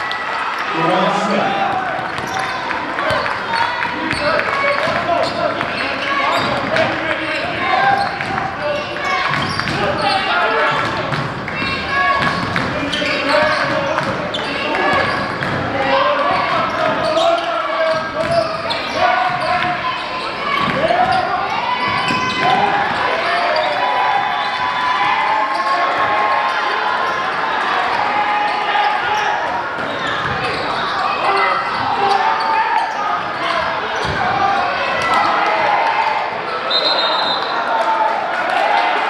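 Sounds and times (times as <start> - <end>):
voices echoing in gym: 0.0 - 39.0
referee whistle: 36.6 - 37.6.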